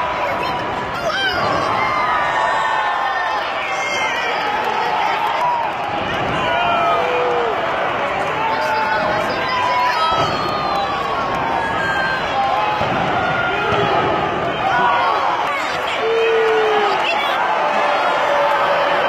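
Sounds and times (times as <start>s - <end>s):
crowd shouting and chanting: 0.0s - 19.0s.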